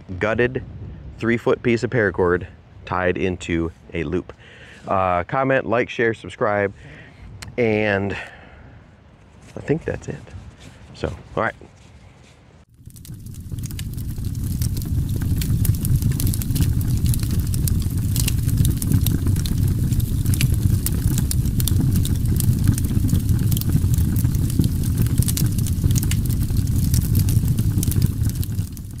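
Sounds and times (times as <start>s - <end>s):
fire crackling: 12.6s - 29.0s
sharp pops from fire: 12.7s - 29.0s.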